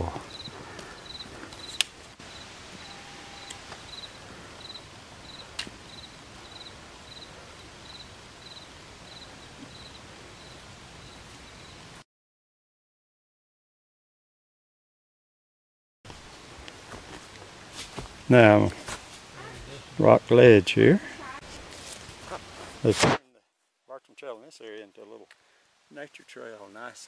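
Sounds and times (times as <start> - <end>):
insect chirping: 0.1 - 11.9.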